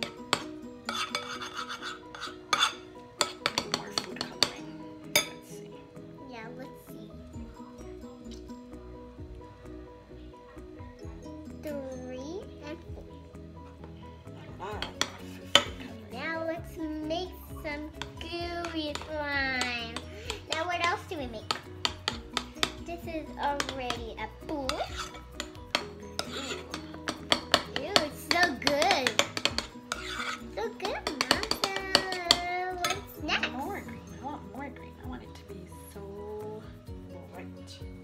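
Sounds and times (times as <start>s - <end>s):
spoon scraping ceramic bowl: 0.0s - 5.5s, 14.8s - 16.0s, 17.5s - 34.2s
background music: 0.0s - 38.0s.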